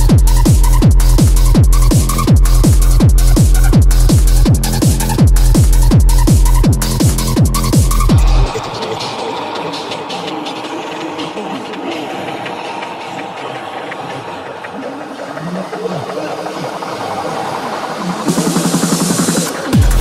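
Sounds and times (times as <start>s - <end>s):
pounding kick drum: 0.0s - 8.6s, 19.7s - 20.0s
noisy wash of sampled effects: 7.9s - 20.0s.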